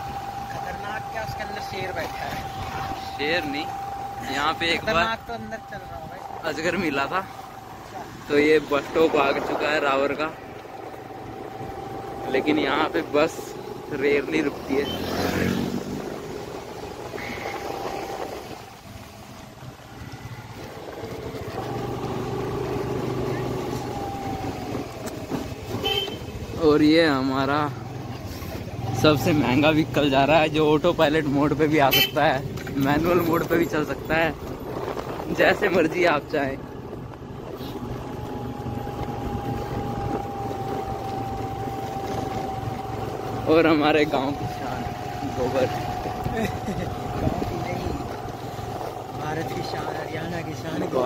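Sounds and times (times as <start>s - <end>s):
motorbike engine: 0.0s - 51.0s.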